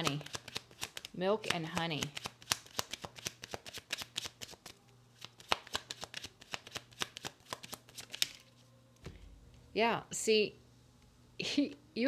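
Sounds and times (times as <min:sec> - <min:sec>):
cards being shuffled: 0:00.0 - 0:08.7.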